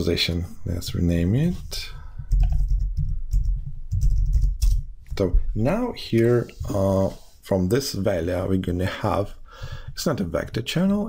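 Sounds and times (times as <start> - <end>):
typing on computer keyboard: 2.3 - 4.8.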